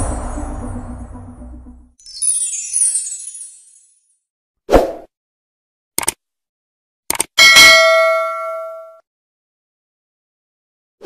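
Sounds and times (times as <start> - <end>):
notification bell ding: 7.4 - 9.0.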